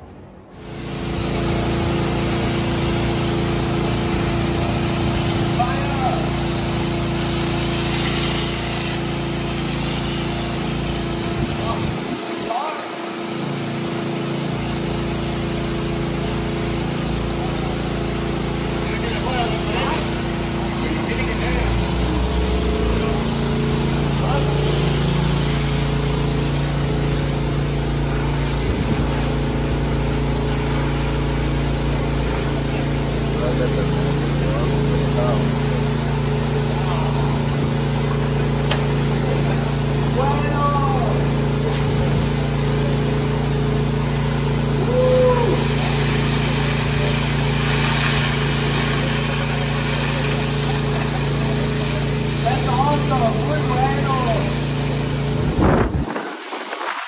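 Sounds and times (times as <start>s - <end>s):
pump engine running: 0.0s - 57.0s
water jet hissing on concrete: 0.5s - 57.0s.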